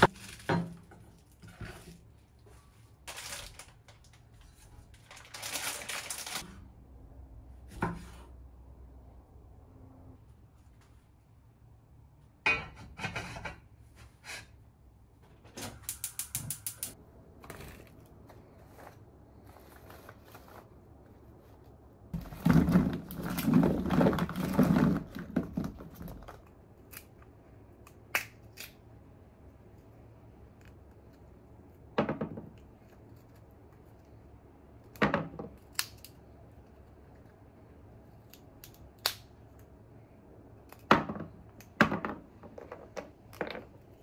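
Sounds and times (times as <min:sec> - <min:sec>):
peanut shells cracking: 0:26.4 - 0:29.0, 0:35.6 - 0:37.4, 0:38.1 - 0:39.8.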